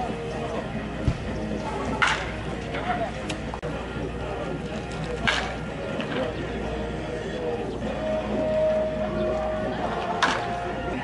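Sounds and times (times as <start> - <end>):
murmur of crowd voices: 0.0 - 11.0.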